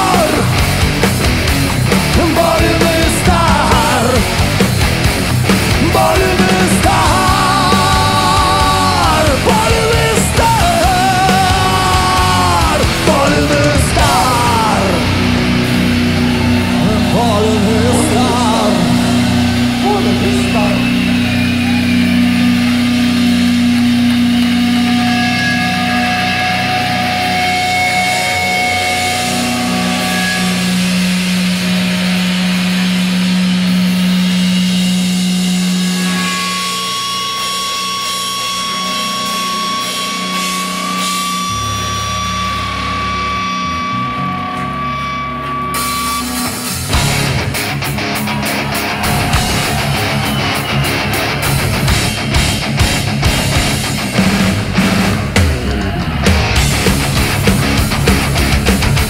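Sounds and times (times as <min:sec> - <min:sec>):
rock band playing long held notes: 0:00.0 - 0:59.0
wavering voices: 0:02.0 - 0:32.1.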